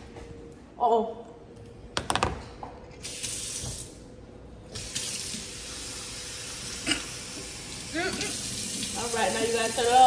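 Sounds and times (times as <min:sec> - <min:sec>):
faucet running into metal sink: 0:04.8 - 0:10.0.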